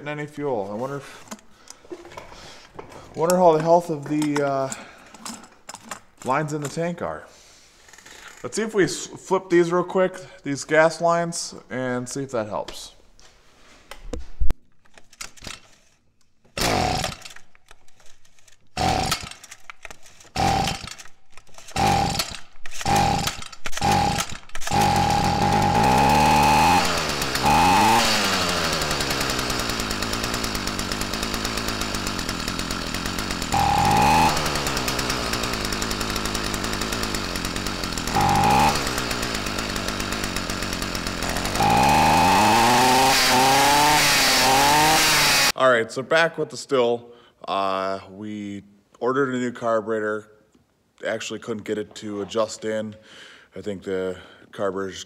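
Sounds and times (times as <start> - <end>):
string trimmer pull-start: 14.9 - 45.6
two-stroke engine revving: 16.6 - 17.2, 18.8 - 19.4, 20.4 - 21.0, 21.8 - 45.6.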